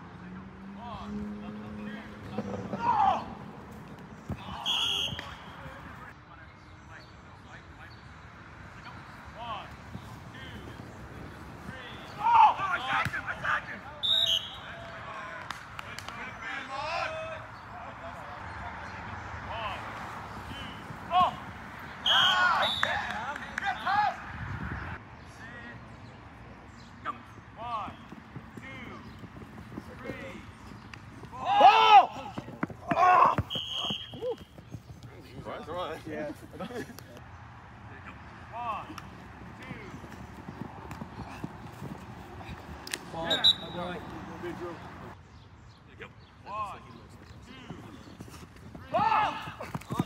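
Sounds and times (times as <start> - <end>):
outdoor background noise: 0.0 - 50.0
players shouting: 0.8 - 6.0, 8.8 - 25.5, 27.0 - 36.9, 37.9 - 45.2, 46.4 - 50.0.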